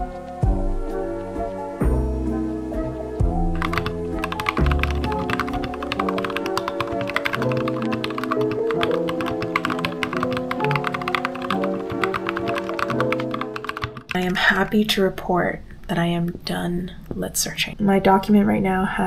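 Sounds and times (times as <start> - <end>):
background music with held notes: 0.0 - 14.1
mechanical keyboard typing: 3.6 - 14.4.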